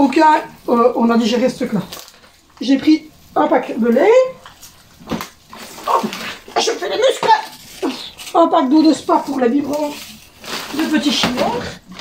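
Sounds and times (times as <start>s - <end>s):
plastic rustling: 0.0s - 12.0s.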